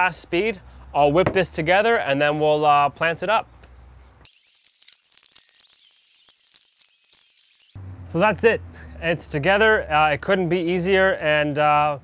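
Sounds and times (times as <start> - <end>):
high-pitched chirps: 4.3 - 7.8
rapid small clicks: 4.3 - 7.8.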